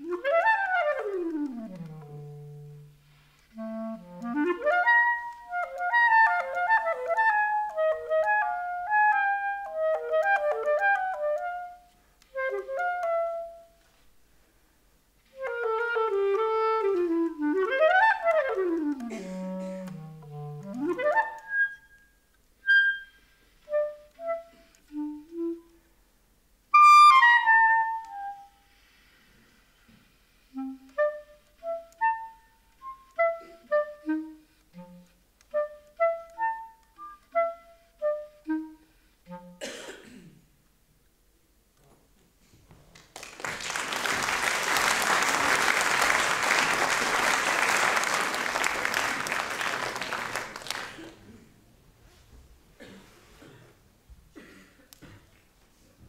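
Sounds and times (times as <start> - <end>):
solo clarinet playing: 0.0 - 13.8, 15.3 - 25.9, 26.7 - 28.6, 30.4 - 39.6.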